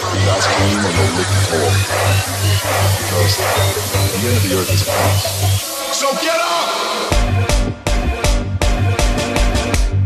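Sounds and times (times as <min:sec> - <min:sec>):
electronic dance music: 0:00.0 - 0:09.9.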